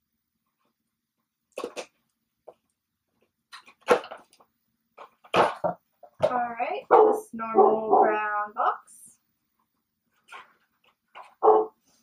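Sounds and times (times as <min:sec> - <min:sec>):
dog barking: 0:06.9 - 0:08.2, 0:11.4 - 0:11.8.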